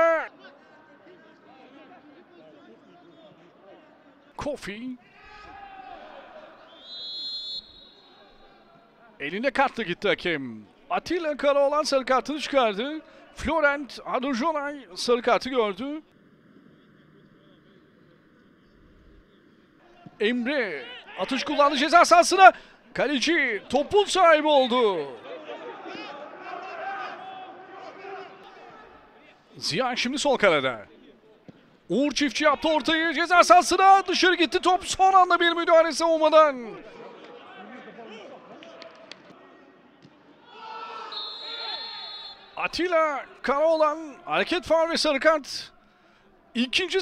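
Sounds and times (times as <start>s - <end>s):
distant footballers shouting: 5.0s - 9.3s, 10.8s - 29.3s, 31.5s - 47.0s
referee's whistle blast: 6.7s - 8.5s, 41.1s - 42.6s
men shouting: 25.2s - 28.9s.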